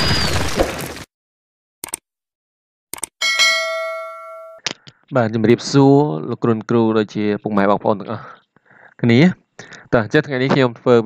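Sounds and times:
bell-like notification chime: 3.2 - 4.6.

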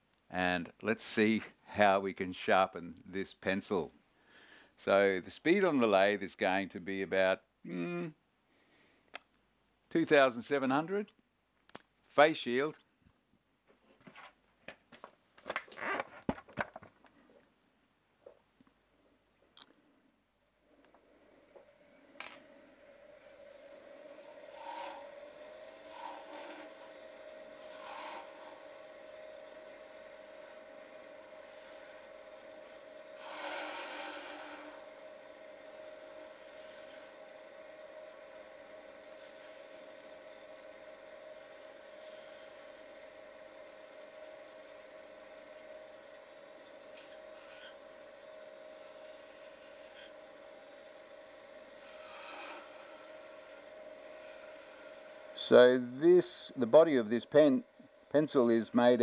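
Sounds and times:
wood lathe whining: 20.7 - 59.0
gouge scraping pencil: 25.9 - 26.8, 27.6 - 28.7, 33.2 - 34.8, 47.0 - 47.8, 51.8 - 53.6.

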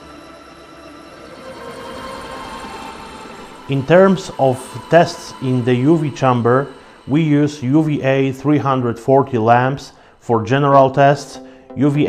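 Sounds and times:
machine hum: 0.0 - 10.1.

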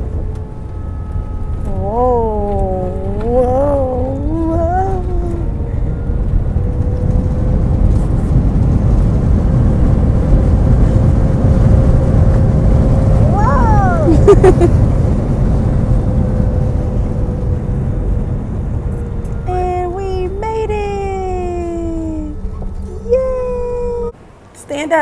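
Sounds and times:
airplane cabin rumble: 0.0 - 25.0
faint engine hum: 0.0 - 25.0
wavering voice: 1.6 - 5.8, 13.2 - 14.5, 19.5 - 24.2.

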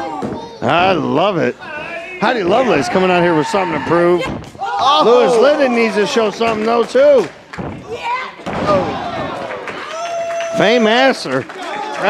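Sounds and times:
bodies slamming onto wrestling ring: 8.4 - 9.5.

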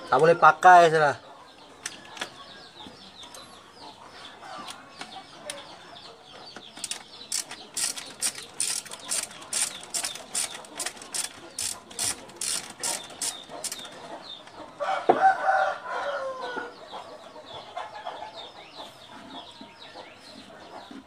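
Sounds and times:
ratchet wrench clicking: 6.8 - 13.9
rooster crowing: 14.8 - 16.7.

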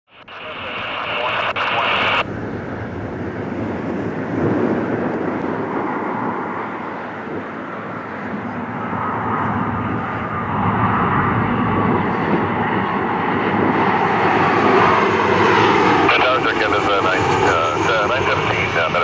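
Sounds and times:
jet engines rumbling: 0.1 - 19.0.

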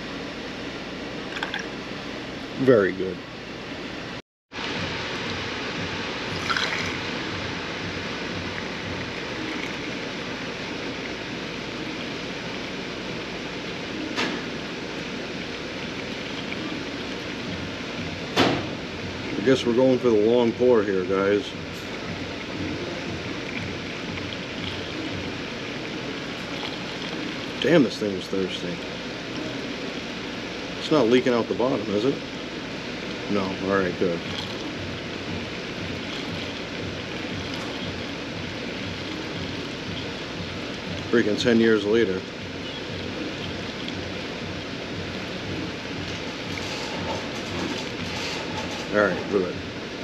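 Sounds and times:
liquid pouring from a jug: 6.3 - 7.2, 8.4 - 11.2, 15.0 - 17.7, 19.3 - 30.1, 33.3 - 49.0.

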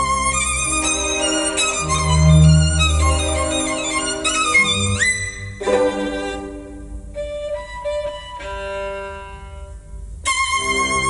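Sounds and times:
classical violin recording: 0.0 - 11.0.

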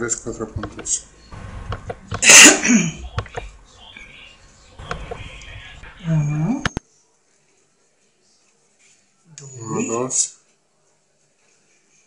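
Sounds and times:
loud sneeze: 2.2 - 3.0.

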